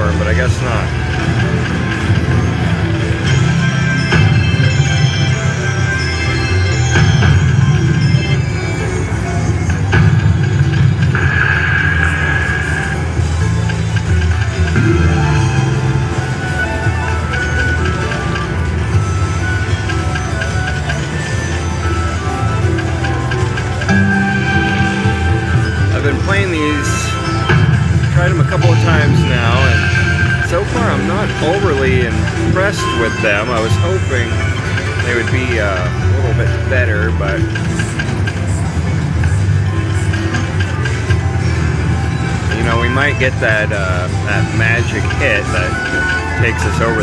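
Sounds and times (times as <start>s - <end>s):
slot machine tunes and chimes: 0.0s - 47.0s.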